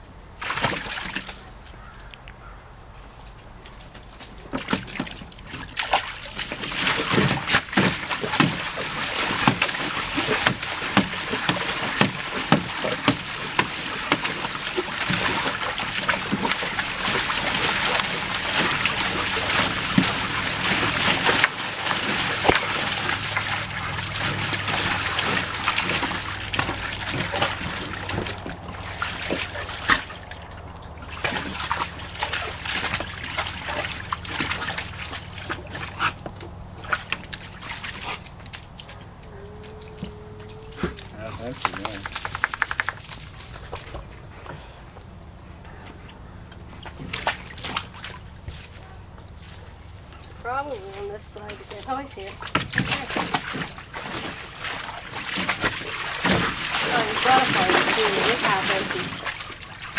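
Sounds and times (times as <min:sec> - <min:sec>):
dog splashing in water: 0:00.4 - 0:01.9, 0:03.2 - 0:44.2, 0:46.1 - 0:59.9.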